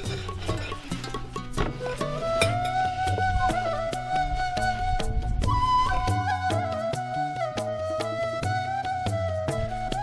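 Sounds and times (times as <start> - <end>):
percussion beat: 0.0 - 10.0
plucked notes: 0.0 - 10.0.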